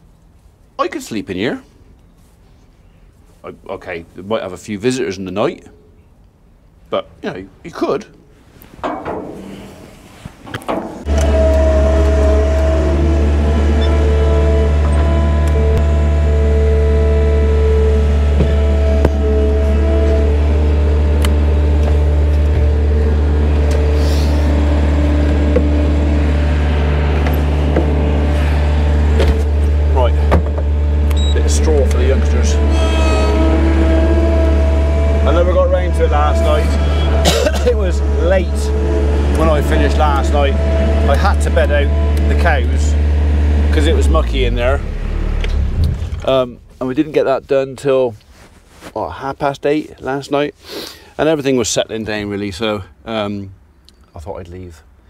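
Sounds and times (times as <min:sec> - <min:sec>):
knocks: 0:08.8 - 0:09.6
hydraulic whining tones: 0:10.7 - 0:47.7
loader engine droning: 0:11.0 - 0:48.0.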